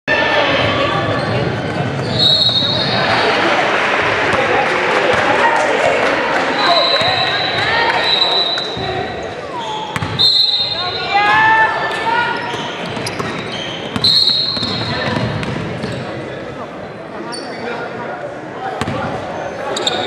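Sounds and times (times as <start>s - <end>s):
echoing hubbub of voices: 0.1s - 20.0s.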